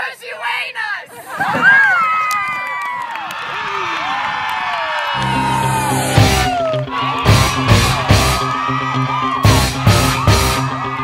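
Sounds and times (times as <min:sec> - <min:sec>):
girls screaming and cheering: 0:01.3 - 0:11.0.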